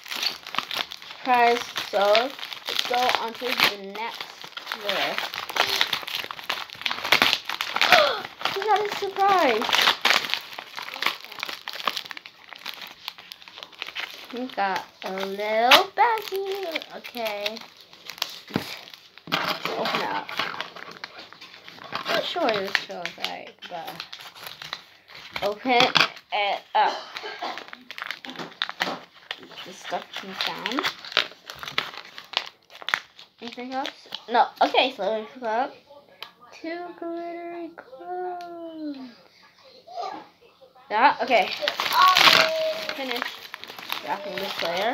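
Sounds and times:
plastic wrapping crinkling: 0.0 - 35.6, 41.1 - 44.9.

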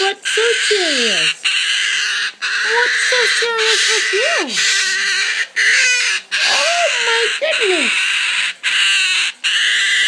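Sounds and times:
cockatoo hissing call: 0.0 - 10.0.

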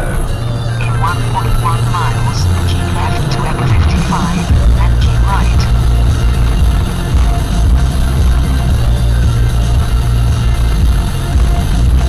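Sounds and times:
car radio playing a song: 0.0 - 12.0
road noise: 0.0 - 12.0.

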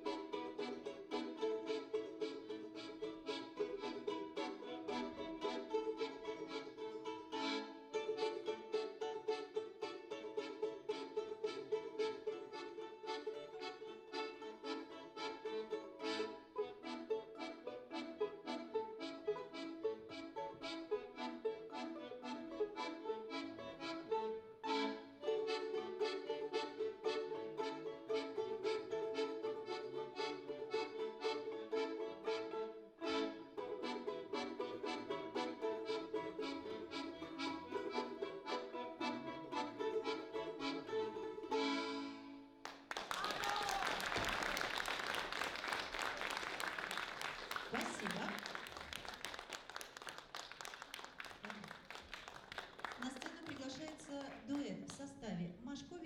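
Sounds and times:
piano accordion: 0.0 - 42.7.

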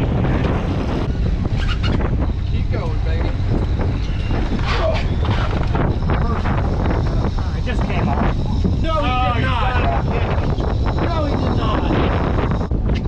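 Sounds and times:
wind rumble on microphone: 0.0 - 13.0.

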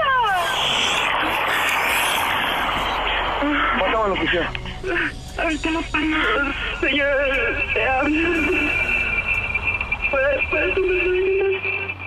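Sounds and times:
rushing static noise: 0.0 - 12.0
voice over telephone line: 10.1 - 11.8.

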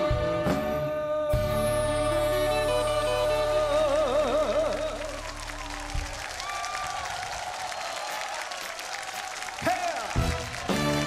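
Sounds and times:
live band playing: 0.0 - 6.5, 9.7 - 11.0
crowd applauding and cheering: 1.5 - 11.0.

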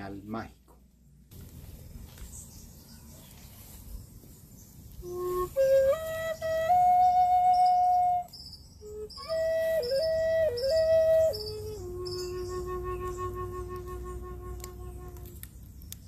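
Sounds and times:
solo flute: 5.0 - 15.5.

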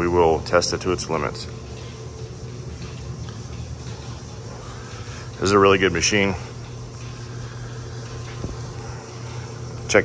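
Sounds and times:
low machine hum with hiss: 0.0 - 10.0.

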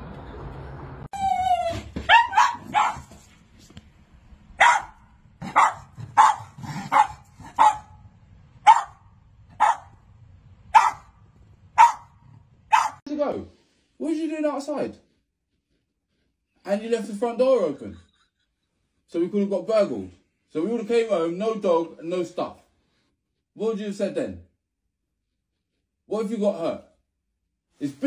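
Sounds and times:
dogs barking: 2.0 - 3.2, 4.6 - 8.0, 8.6 - 10.0, 10.7 - 11.2, 11.8 - 13.0.

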